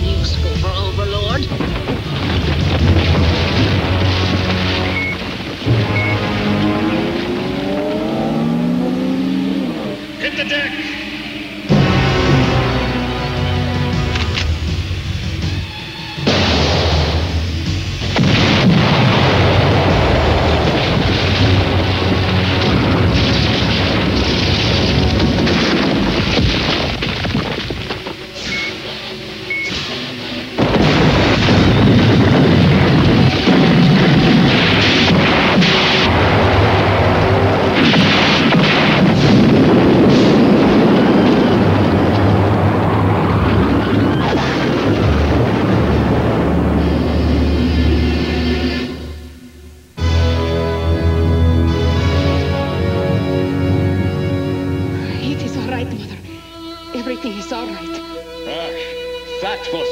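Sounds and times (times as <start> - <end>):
loud explosions: 0.0 - 9.2, 11.7 - 49.4
dramatic music: 0.0 - 59.9.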